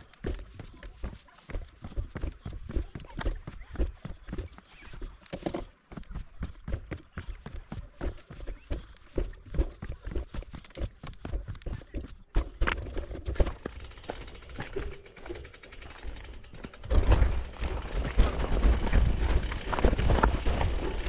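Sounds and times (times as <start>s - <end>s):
bike rattling: 8.0s - 21.0s.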